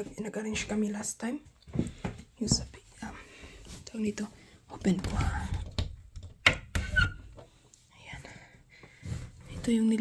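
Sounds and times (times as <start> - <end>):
door squeak: 6.7 - 7.4.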